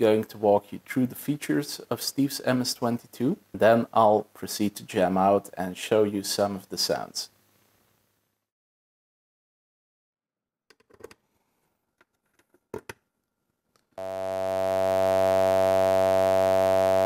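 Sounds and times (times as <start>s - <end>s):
synthesizer drone: 14.0s - 17.0s.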